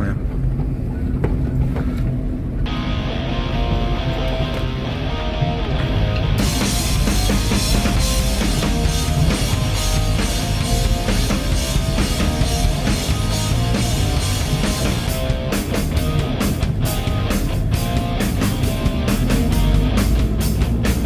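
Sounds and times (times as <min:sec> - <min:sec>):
car cabin road noise: 0:00.0 - 0:21.0
rock music with drums: 0:02.6 - 0:21.0.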